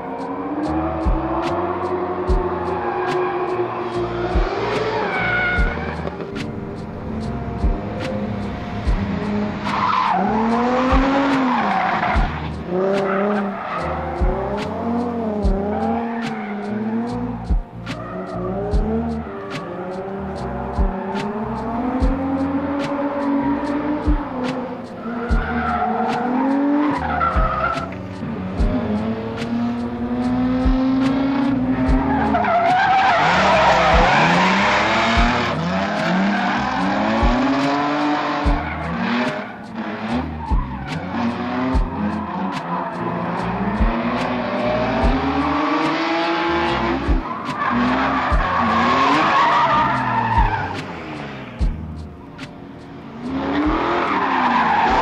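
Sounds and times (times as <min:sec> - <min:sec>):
tires skidding and squealing: 0:00.0 - 0:51.7, 0:53.0 - 0:55.0
car engine revving: 0:00.0 - 0:55.0.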